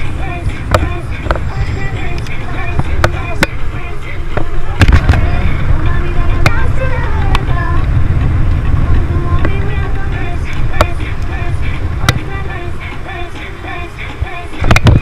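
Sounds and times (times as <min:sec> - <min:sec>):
music playing: 0:00.0 - 0:15.0
wind and road rumble: 0:00.0 - 0:15.0.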